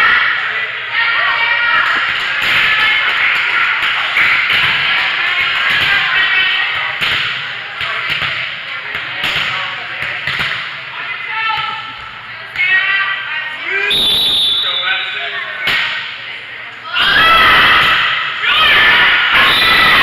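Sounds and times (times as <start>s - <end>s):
voices calling and chattering: 0.0s - 20.0s.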